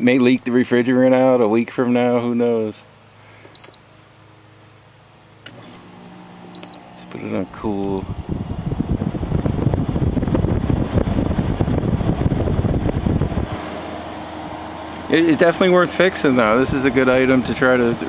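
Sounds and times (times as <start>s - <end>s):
air conditioner fan hum: 0.0s - 18.0s
control panel button beep: 3.6s - 3.8s, 6.5s - 6.8s
blower air rushing: 5.5s - 18.0s.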